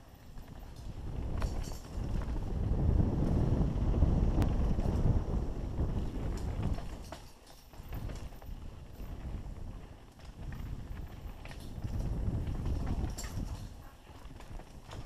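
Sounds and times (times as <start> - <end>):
bike clicks and rattles: 0.0 - 15.0
wind buffeting microphone: 0.0 - 15.0.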